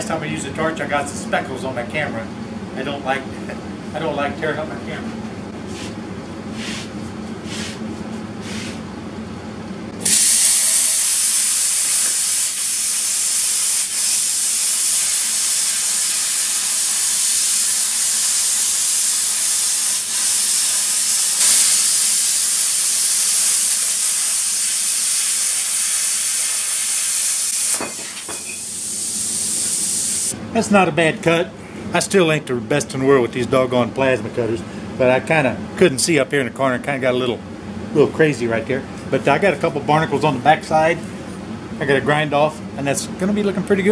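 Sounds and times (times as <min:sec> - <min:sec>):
plasma cutter hissing: 0:10.0 - 0:30.4.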